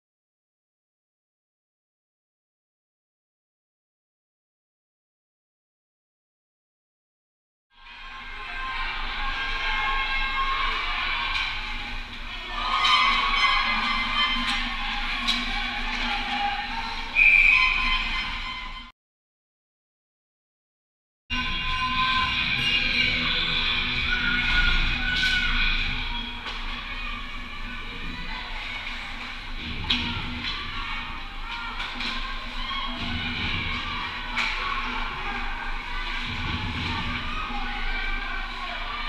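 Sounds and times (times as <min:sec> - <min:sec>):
arena background noise: 0:07.8 - 0:18.9, 0:21.3 - 0:39.0
referee's whistle blast: 0:17.2 - 0:18.1.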